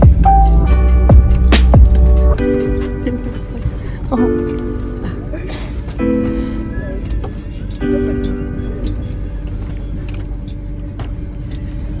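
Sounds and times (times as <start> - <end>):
held music notes: 0.0 - 10.2
train rumbling on rails: 0.0 - 12.0.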